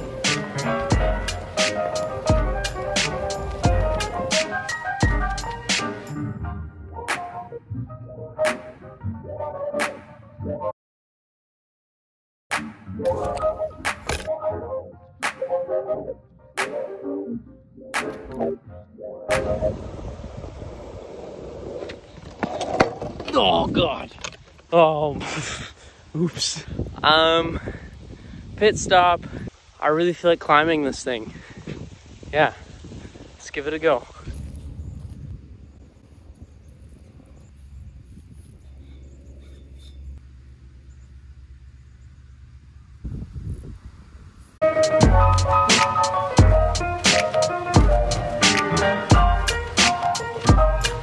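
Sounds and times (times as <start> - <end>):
music with a beat: 0.0 - 6.1, 44.6 - 51.0
skateboard wheels rolling on concrete: 0.0 - 6.2, 19.3 - 25.5, 43.0 - 51.0
low outdoor rumble: 35.5 - 44.6.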